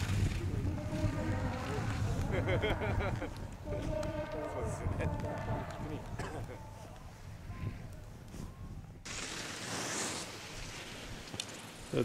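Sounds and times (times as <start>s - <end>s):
wind rumble on microphone: 0.0s - 9.1s.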